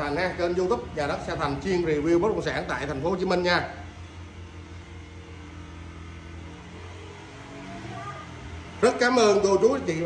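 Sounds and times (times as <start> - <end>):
small electric motor humming: 0.0 - 10.0.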